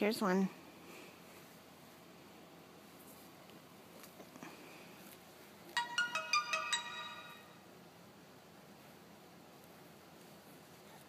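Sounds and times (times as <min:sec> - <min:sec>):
electronic chiming jingle: 0:05.8 - 0:07.6.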